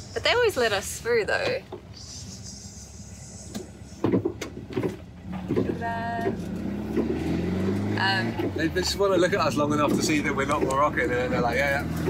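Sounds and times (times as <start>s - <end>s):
van engine running low: 0.0s - 12.0s.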